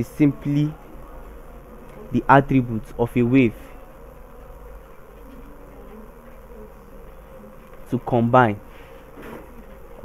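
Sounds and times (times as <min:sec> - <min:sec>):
faint electrical buzz: 0:00.0 - 0:10.0.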